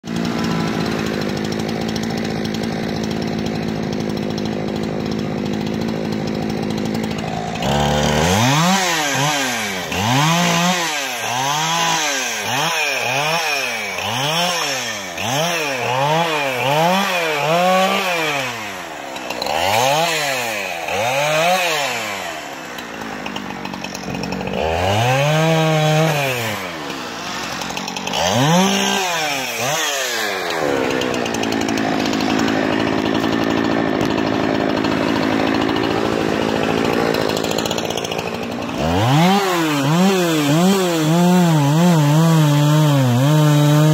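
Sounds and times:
chainsaw engine revving: 0.0s - 43.9s.

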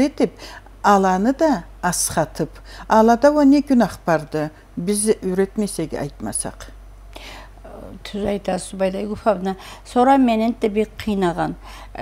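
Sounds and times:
woman speaking: 0.0s - 6.8s, 7.6s - 12.0s
soft breath: 7.1s - 7.6s.

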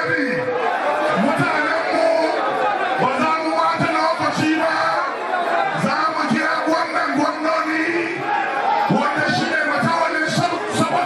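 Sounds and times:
loud crowd babble: 0.0s - 11.0s.

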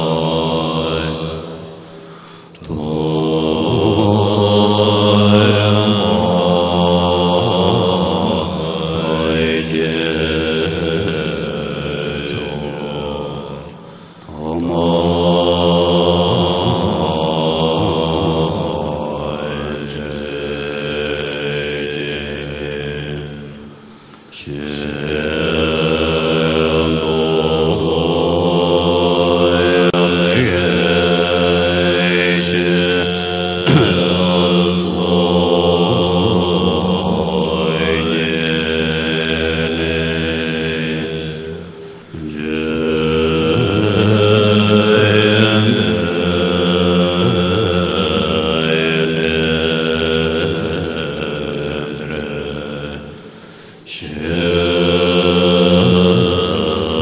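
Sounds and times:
person chanting in long notes: 0.0s - 1.9s, 2.5s - 57.0s
breath: 1.7s - 2.6s, 13.8s - 14.4s, 23.8s - 24.3s, 41.7s - 42.2s, 53.1s - 53.9s.

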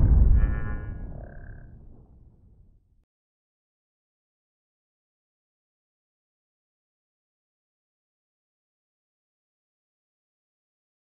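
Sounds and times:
low rumble: 0.0s - 2.7s.

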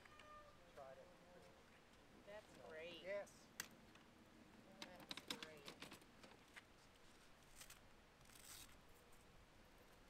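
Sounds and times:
faint rustle: 5.4s - 10.0s.

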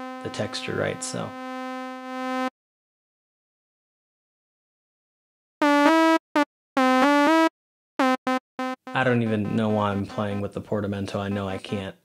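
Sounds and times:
gliding synthesizer notes: 8.0s - 10.6s
synthesizer held note: 8.0s - 11.9s.

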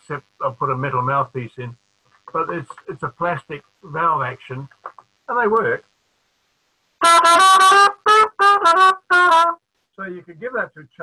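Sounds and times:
plastic cornet notes: 7.0s - 9.6s.

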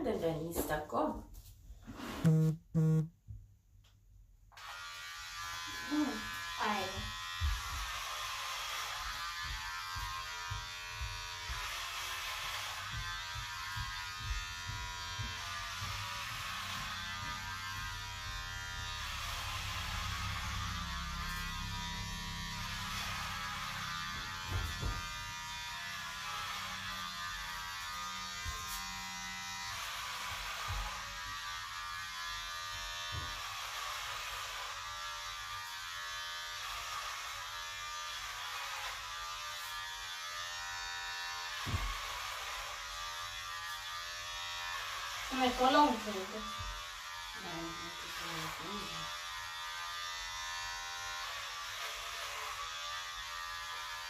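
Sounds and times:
electric hair clippers buzzing: 2.2s - 3.1s, 4.5s - 54.0s.

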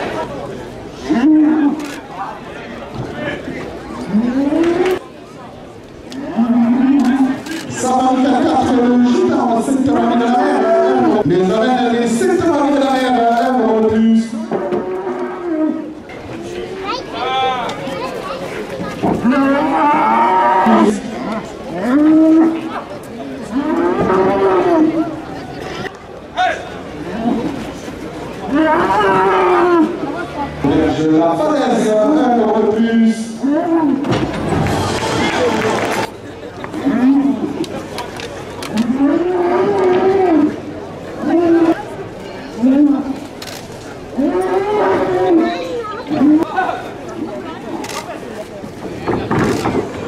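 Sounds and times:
bull bellowing: 4.0s - 5.0s, 6.2s - 7.4s, 14.2s - 16.0s, 19.2s - 22.7s, 23.4s - 25.2s, 28.4s - 34.1s, 36.8s - 37.6s, 38.7s - 41.8s, 44.1s - 46.5s
men shouting drawn-out calls: 6.4s - 15.1s.

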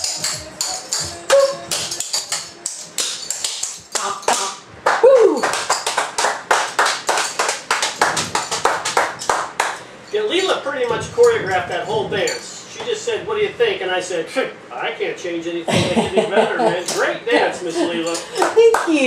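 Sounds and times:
hand clapping: 0.0s - 9.9s, 18.0s - 19.0s
person whooping: 1.3s - 1.7s, 4.9s - 5.6s.

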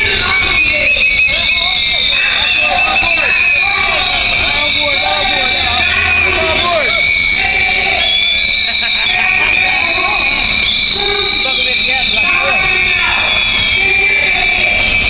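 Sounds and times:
crowd blowing whistles: 0.0s - 15.0s
voices: 0.0s - 15.0s.

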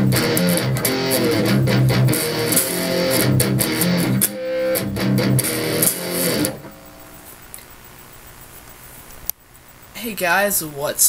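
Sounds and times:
electric guitar chord: 0.0s - 7.4s
amplifier hiss: 0.0s - 11.0s.

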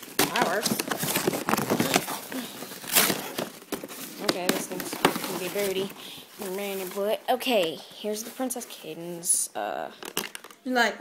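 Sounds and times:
sharp plastic crackle: 0.0s - 8.8s, 10.0s - 10.7s
plastic packaging rustling: 0.0s - 9.4s, 10.0s - 10.6s.

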